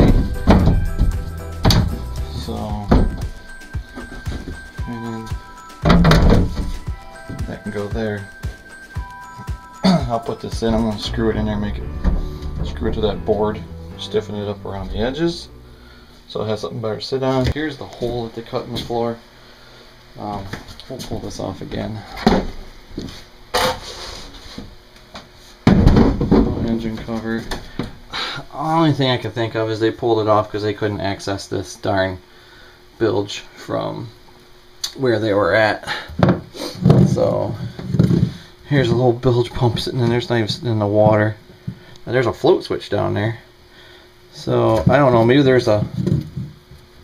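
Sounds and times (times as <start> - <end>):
floor panel thunks: 0.0 - 2.1, 25.7 - 26.7
background music: 0.0 - 17.0.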